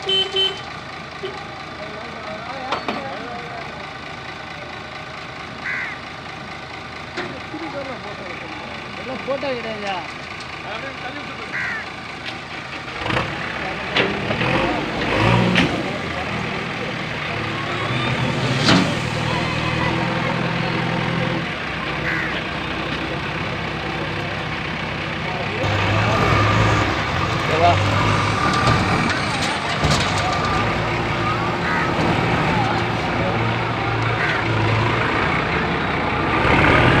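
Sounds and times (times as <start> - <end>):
diesel truck engine running: 0.0 - 37.0
dump bed lowering: 12.8 - 22.1, 22.7 - 37.0.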